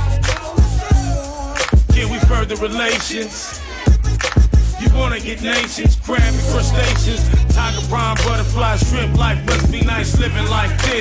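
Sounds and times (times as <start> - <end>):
beat with heavy bass kicks: 0.0 - 11.0
rapping into a microphone: 0.0 - 11.0.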